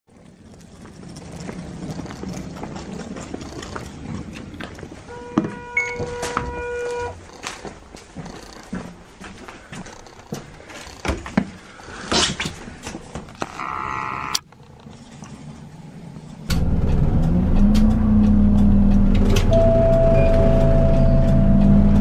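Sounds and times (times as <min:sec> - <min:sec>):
footsteps on boarding steps: 0:00.1 - 0:13.4.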